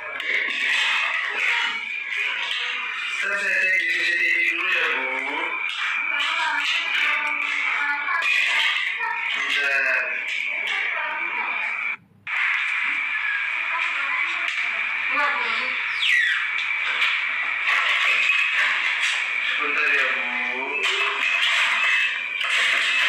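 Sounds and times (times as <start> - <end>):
voices talking: 0.0 - 23.0.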